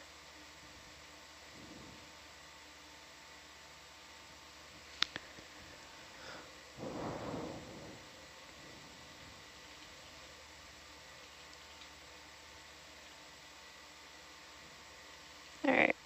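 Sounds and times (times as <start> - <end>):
faint steady hiss: 0.0 - 16.0
thin hum tones: 0.0 - 16.0
noisy rustle: 0.2 - 15.6.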